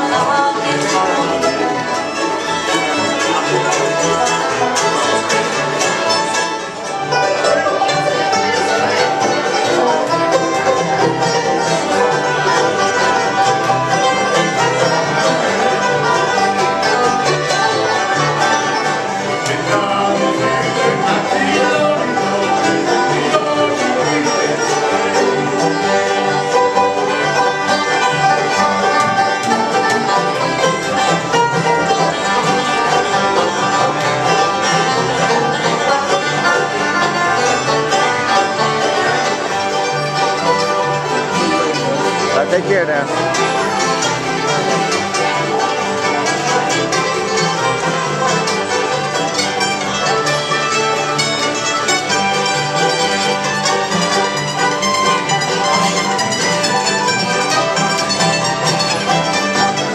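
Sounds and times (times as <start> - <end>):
acoustic guitars: 0.0 - 59.9
banjo: 0.0 - 59.9
fiddle: 0.0 - 59.9
mandolin: 0.0 - 59.9
upright bass: 0.0 - 59.9.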